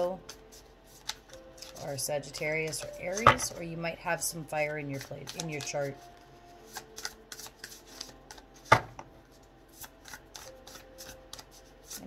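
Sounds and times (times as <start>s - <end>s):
cards being shuffled: 0.0s - 3.5s, 5.0s - 9.1s, 9.7s - 12.0s.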